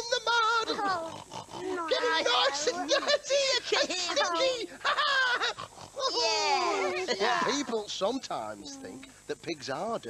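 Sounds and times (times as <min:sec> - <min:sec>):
people imitating pig squeals: 0:00.5 - 0:07.6.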